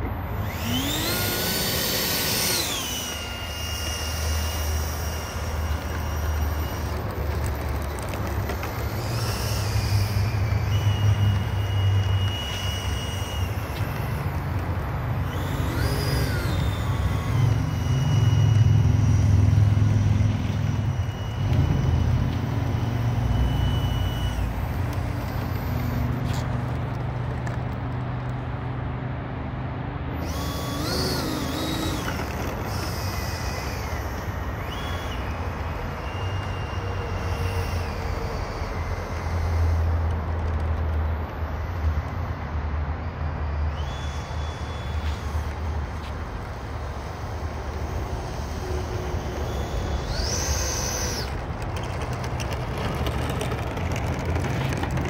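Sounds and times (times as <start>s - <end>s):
electric ducted fan whining: 0.0s - 55.0s.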